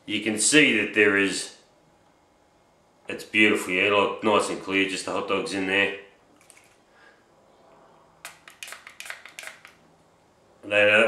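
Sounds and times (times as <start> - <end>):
spray bottle spritzes: 8.3 - 9.8.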